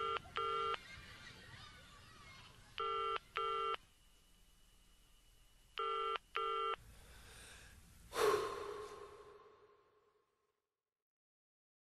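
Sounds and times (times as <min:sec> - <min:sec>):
telephone ringing: 0:02.8 - 0:03.8, 0:05.8 - 0:06.8.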